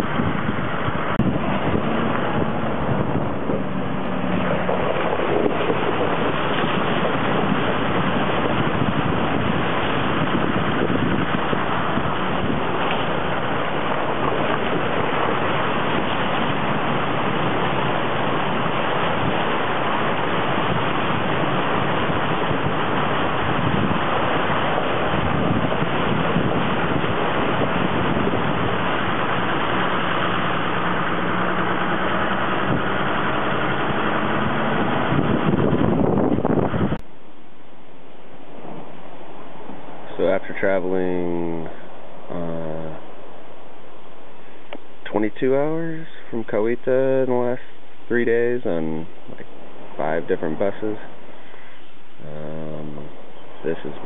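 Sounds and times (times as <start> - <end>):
wind across microphone: 0.0 - 54.0.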